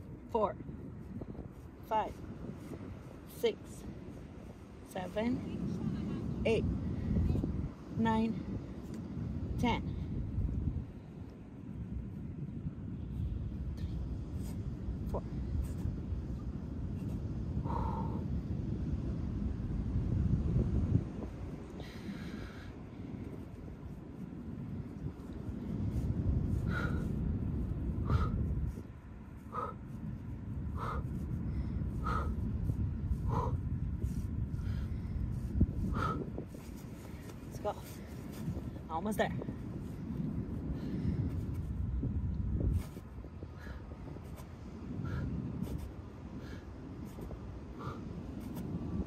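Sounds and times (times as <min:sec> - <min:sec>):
wind rumble on microphone: 0:00.0 - 0:49.0
woman breathing hard: 0:17.6 - 0:18.4, 0:21.7 - 0:23.4, 0:26.4 - 0:28.8, 0:30.7 - 0:38.7, 0:43.4 - 0:44.2, 0:46.2 - 0:49.0.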